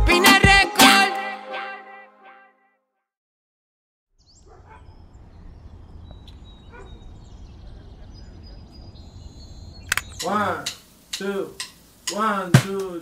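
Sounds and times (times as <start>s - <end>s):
sharp click: 9.9s - 12.9s
person speaking: 10.2s - 13.0s.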